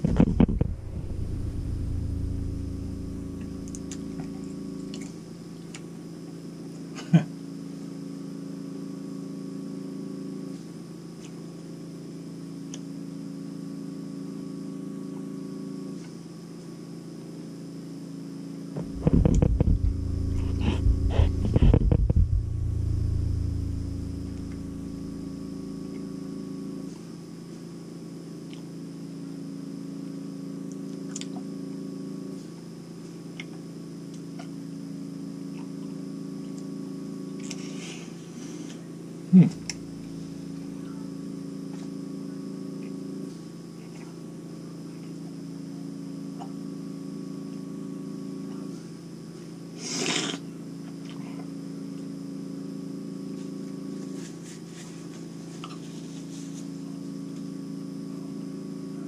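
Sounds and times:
steady low hum: 0.0s - 11.1s, 17.6s - 33.1s, 33.7s - 44.2s, 51.6s - 59.0s
man humming mm: 18.8s - 26.2s, 39.3s - 39.8s.

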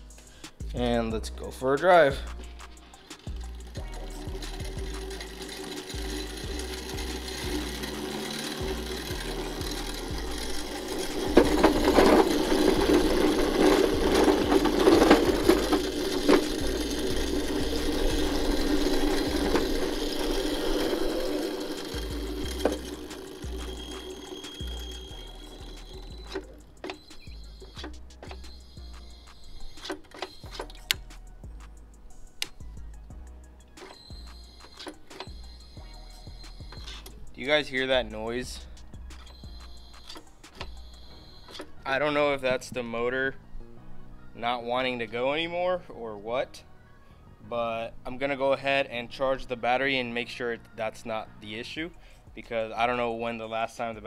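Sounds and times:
electric motor running: 2.9s - 31.1s, 33.9s - 38.1s.

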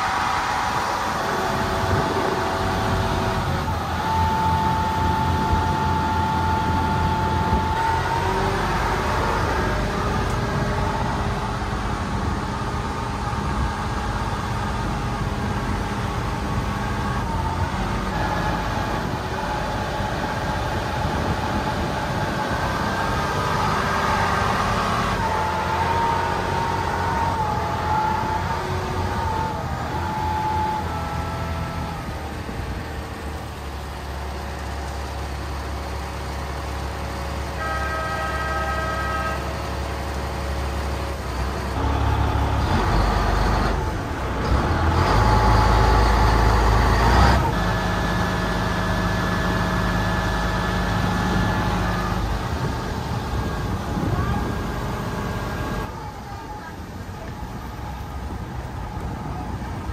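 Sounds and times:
boat engine running: 0.0s - 36.8s
wind: 0.0s - 59.9s.

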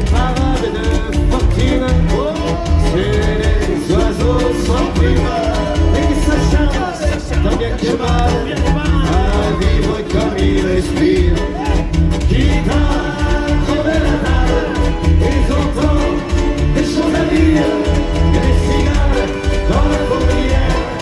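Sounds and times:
accordions: 0.0s - 21.0s
acoustic guitar: 0.0s - 21.0s
steady driving beat: 0.0s - 21.0s.

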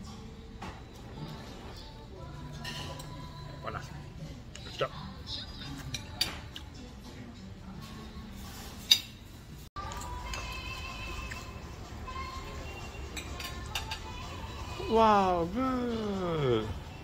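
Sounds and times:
dishes and cutlery clinking: 0.0s - 3.9s, 4.5s - 11.4s, 12.6s - 14.4s
faint music with held notes: 0.0s - 17.0s.

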